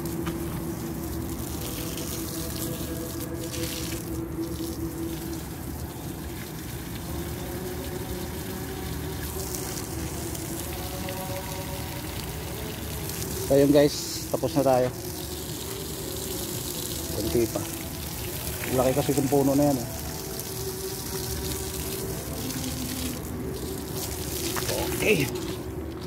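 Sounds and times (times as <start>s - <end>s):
hose water spraying on soil: 0.0s - 26.0s.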